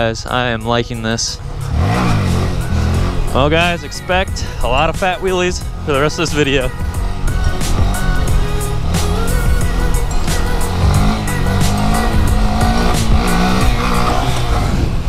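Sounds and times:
background music with steady beat: 0.0s - 15.0s
motorcycle engine revving: 0.0s - 15.0s.

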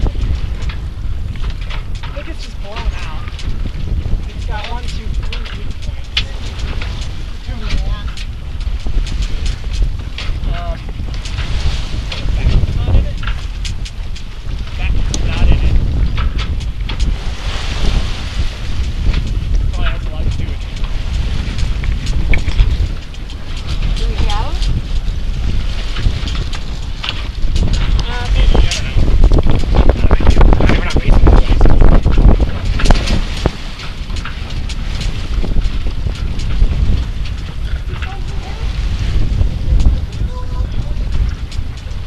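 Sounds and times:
water washing against hull: 0.0s - 42.0s
wind buffeting microphone: 0.0s - 42.0s.

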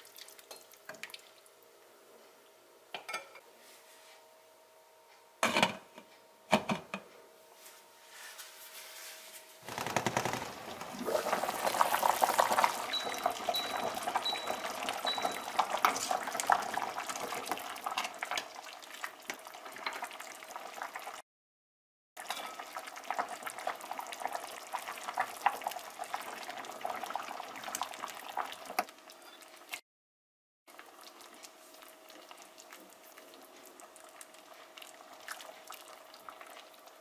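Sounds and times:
soup boiling with crackling pops: 9.7s - 21.2s, 22.2s - 29.8s, 30.7s - 37.0s.

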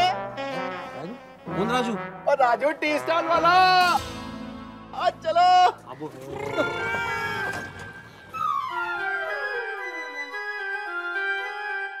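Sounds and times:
cow mooing: 6.3s - 7.7s
background music with held tones: 7.7s - 12.0s.

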